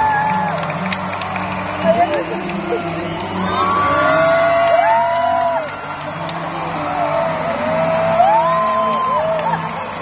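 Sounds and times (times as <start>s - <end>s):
audience crowd noise: 0.0s - 10.0s.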